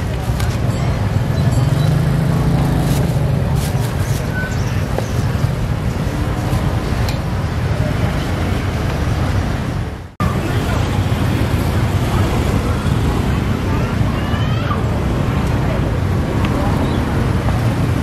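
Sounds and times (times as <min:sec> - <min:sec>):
motorbike and traffic noise: 0:00.0 - 0:18.0.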